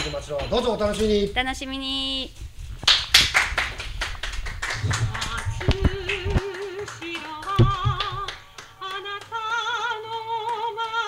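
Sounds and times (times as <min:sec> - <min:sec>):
hand clapping: 0:02.8 - 0:11.0.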